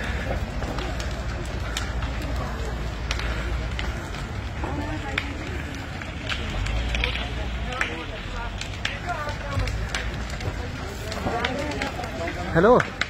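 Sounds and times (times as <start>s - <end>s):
burning timber cracking: 0.0s - 13.0s
fire rumbling: 0.0s - 13.0s
indistinct voices: 0.0s - 13.0s.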